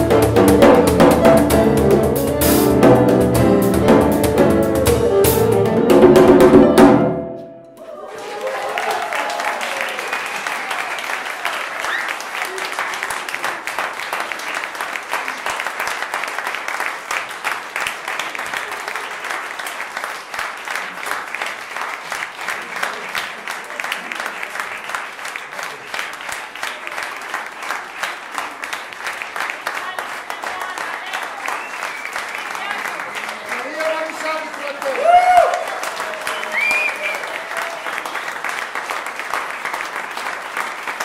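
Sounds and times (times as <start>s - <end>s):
audience applauding: 7.8s - 41.0s.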